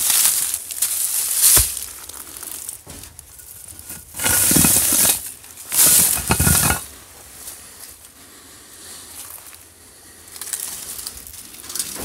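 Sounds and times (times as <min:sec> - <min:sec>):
leaves and twigs crunching underfoot: 0:00.0 - 0:08.0, 0:10.2 - 0:12.0.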